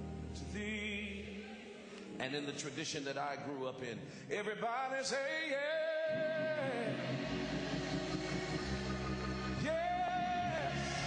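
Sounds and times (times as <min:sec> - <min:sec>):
church organ holding low chord: 0:06.1 - 0:11.0.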